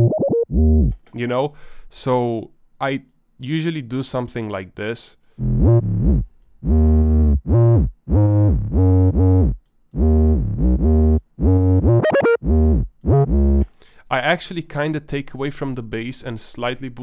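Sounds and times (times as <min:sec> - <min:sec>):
sliding synth bass notes: 0:00.0 - 0:01.0, 0:05.4 - 0:13.7.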